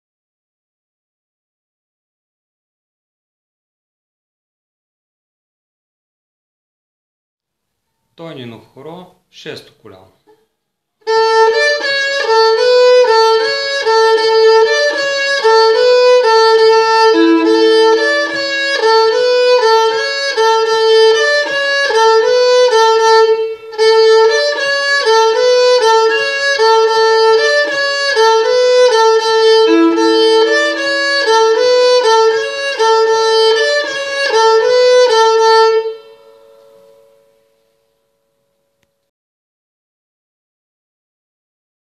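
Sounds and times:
bowed string folk melody: 11.0 - 39.0.

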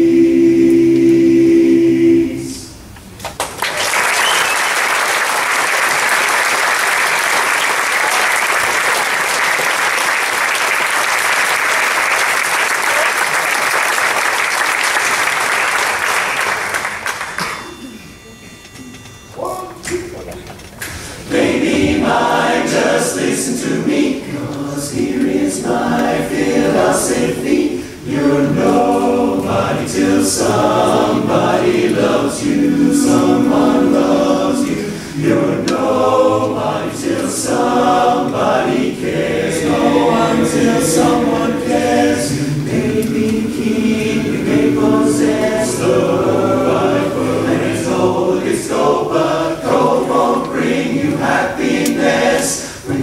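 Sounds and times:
men's a cappella chorus singing: 0.0 - 2.8, 21.2 - 53.0.

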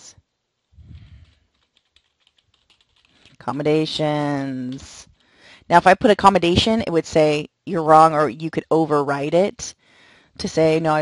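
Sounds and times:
rapid keyboard typing: 0.8 - 6.6.

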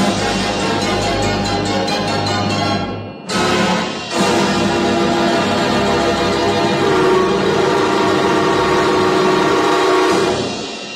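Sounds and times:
pipe organ chord: 0.0 - 10.5.

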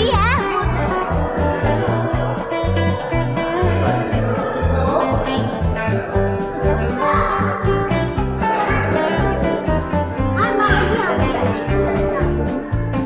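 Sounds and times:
bass and drum beat: 0.0 - 13.0
guitar: 0.0 - 13.0.

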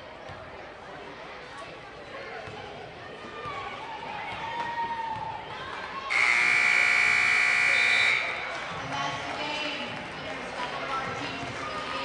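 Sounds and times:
scoreboard buzzer: 6.1 - 8.3.

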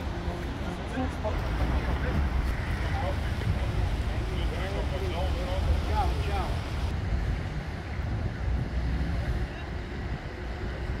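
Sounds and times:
street traffic rumble: 0.0 - 11.0
people talking: 0.7 - 6.9.

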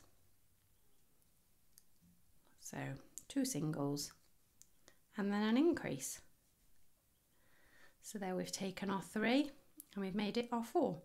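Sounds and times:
woman speaking: 2.6 - 4.2, 5.1 - 6.3, 8.0 - 11.0.

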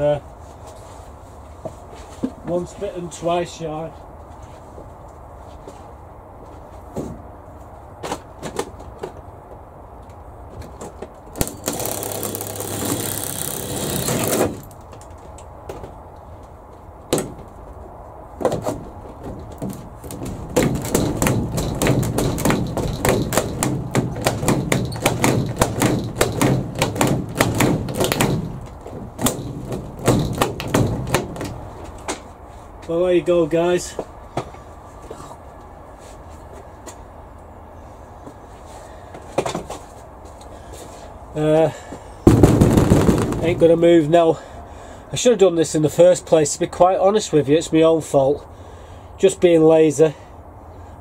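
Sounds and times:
clicking and rattling: 11.4 - 15.5, 18.6 - 32.2.

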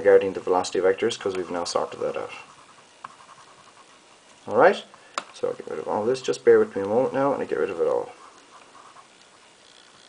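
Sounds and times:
hand rubbing a whiteboard: 0.0 - 4.7, 6.0 - 10.0.

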